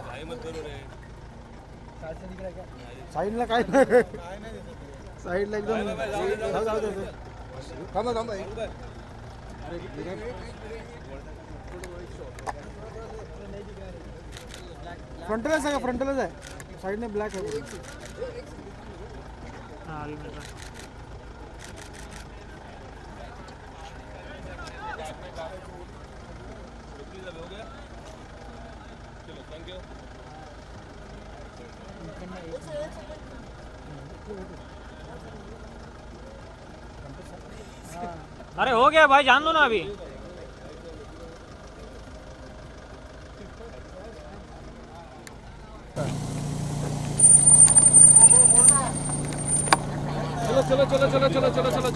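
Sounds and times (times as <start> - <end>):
car engine idling: 0.0 - 51.9
faint crowd voices: 0.0 - 51.9.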